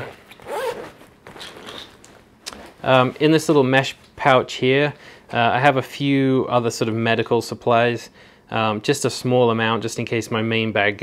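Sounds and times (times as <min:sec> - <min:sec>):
backpack fabric rustling: 0:00.0 - 0:03.2.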